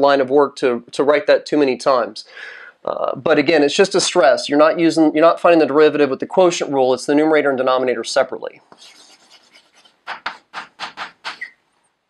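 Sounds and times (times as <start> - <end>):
chalk scratching on blackboard: 8.7 - 11.5.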